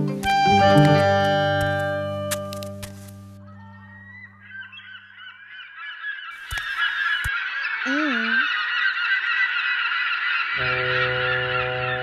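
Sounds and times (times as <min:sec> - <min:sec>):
music with plucked notes: 0:00.0 - 0:04.4
geese honking: 0:03.3 - 0:07.8, 0:08.5 - 0:12.0
sharp clicks: 0:06.4 - 0:07.4.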